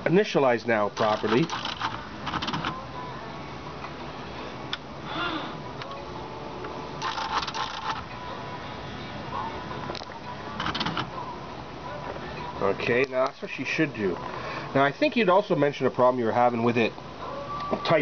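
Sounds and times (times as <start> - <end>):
typewriter rapid clicking: 1.0 - 2.7, 7.0 - 8.0, 10.6 - 11.1
typewriter carrier moving: 1.0 - 2.8, 10.6 - 11.1.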